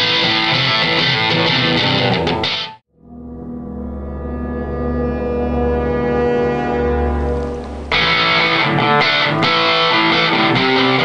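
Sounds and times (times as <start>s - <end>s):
electric guitar sustained chord: 2.9s - 11.0s.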